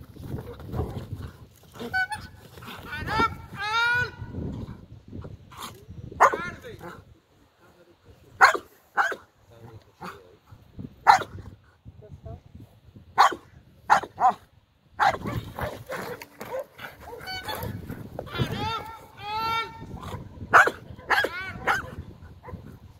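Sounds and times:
dog barking: 6.2 - 6.4, 8.4 - 9.2, 11.0 - 11.3, 13.2 - 14.4, 15.0 - 17.6, 20.5 - 22.6.

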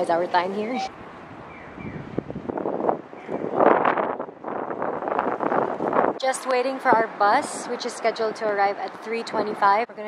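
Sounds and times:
street noise: 0.0 - 10.0
wind gusting on microphone: 0.0 - 10.0.

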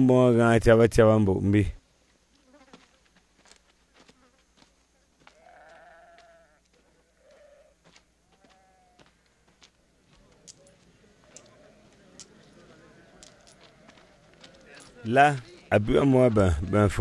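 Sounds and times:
faint drawn-out calls: 3.8 - 15.6.

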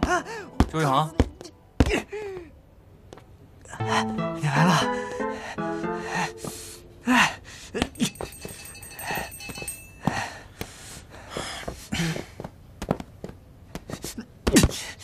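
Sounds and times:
man grunting and breathing heavily: 3.7 - 12.5.

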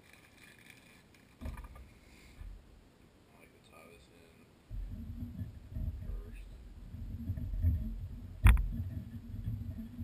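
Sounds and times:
faint rustling of thread: 0.0 - 2.6
dull thump: 1.4 - 2.6, 4.7 - 10.0.

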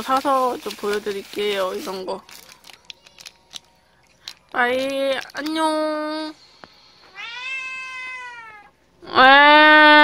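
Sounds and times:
cat meowing: 7.1 - 8.7.

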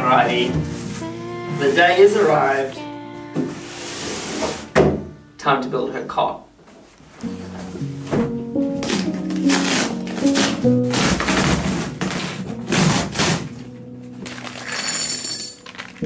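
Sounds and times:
background music: 0.0 - 6.0, 7.2 - 16.0
cardboard tearing: 8.7 - 13.7.

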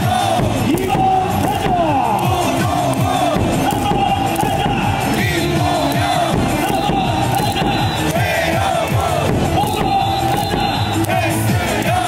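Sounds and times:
crowd chanting and cheering: 0.0 - 12.0
song over stadium loudspeakers: 0.0 - 12.0.

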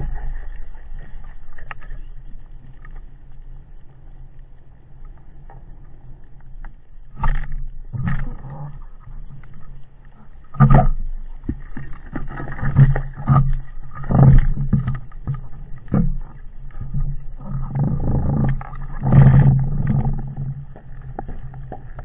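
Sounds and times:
low underwater hum: 0.0 - 22.0.

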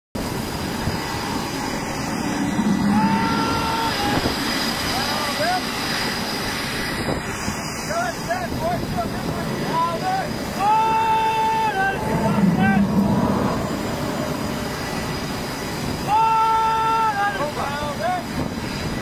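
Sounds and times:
machinery noise: 0.2 - 19.0
roar of wind: 0.2 - 19.0.

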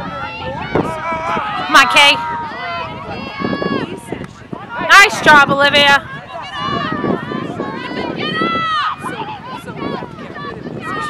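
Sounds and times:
voices shouting across a field: 0.0 - 11.0.

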